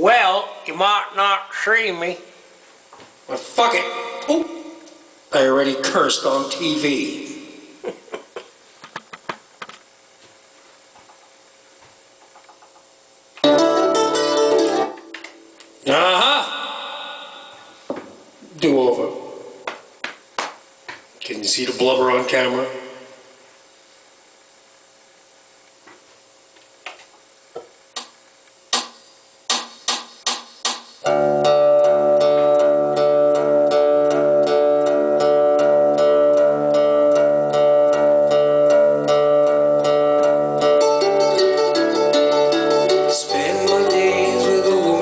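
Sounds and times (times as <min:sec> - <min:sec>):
acoustic guitar music: 0:13.4 - 0:15.6, 0:31.0 - 0:45.0.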